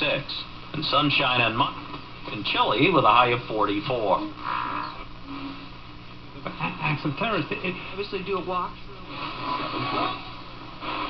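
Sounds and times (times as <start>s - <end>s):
radio static and hiss: 0.0s - 11.0s
steady low hum: 0.0s - 11.0s.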